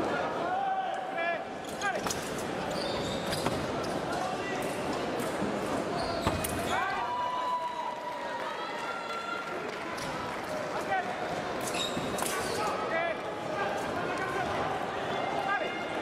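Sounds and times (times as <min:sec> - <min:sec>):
chatter in large hall: 0:00.0 - 0:16.0
shoes squeaking on floor: 0:02.0 - 0:04.1, 0:05.9 - 0:06.8, 0:11.6 - 0:12.7.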